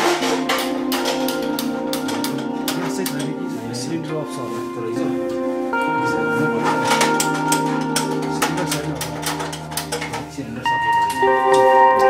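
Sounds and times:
sharp percussive hits: 0.0s - 3.3s
held synth notes: 0.0s - 12.0s.

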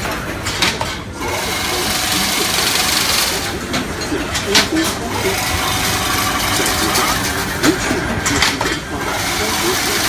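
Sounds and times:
fence weaving machine running: 0.0s - 10.0s.

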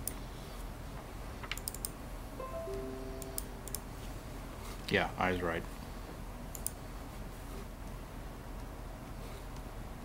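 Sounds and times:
descending electronic chime: 2.4s - 4.5s.

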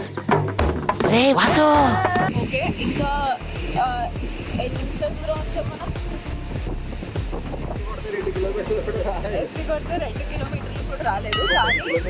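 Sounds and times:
wind buffeting microphone: 1.6s - 11.9s
music with bass beat: 1.8s - 12.0s.

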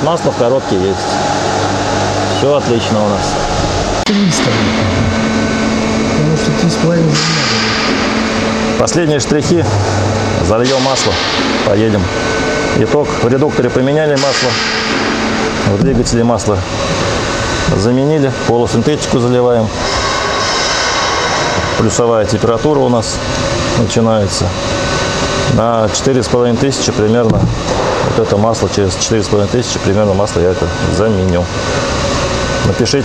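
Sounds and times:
steady machine hum: 0.0s - 33.0s.

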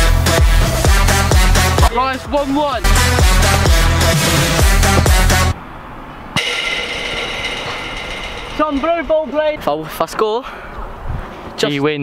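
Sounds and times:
ball striking metal goal frame: 6.4s - 10.2s
metal frame ringing: 6.4s - 10.7s.

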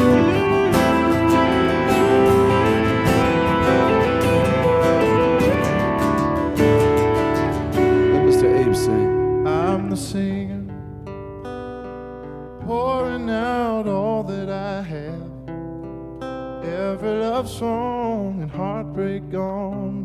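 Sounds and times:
electric guitar lead line: 0.0s - 20.0s
strummed acoustic guitars: 0.0s - 20.0s.

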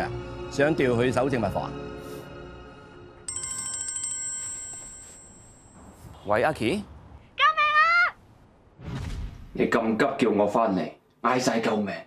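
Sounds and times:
phone ringtone pulsing: 3.3s - 5.8s.

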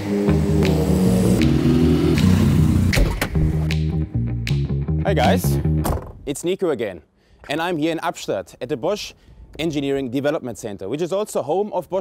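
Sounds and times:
car engine driving up: 0.0s - 3.7s
background music: 0.0s - 6.1s.

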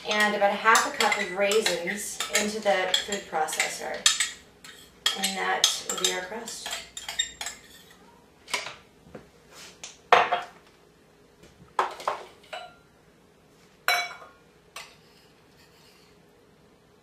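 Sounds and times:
utensils clinking on food processor bowl: 0.0s - 7.7s.

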